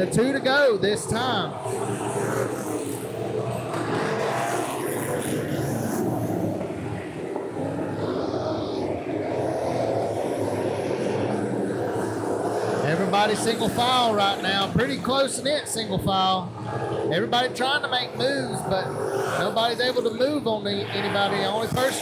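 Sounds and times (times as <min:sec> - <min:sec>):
race car engines: 0:00.0 - 0:22.0.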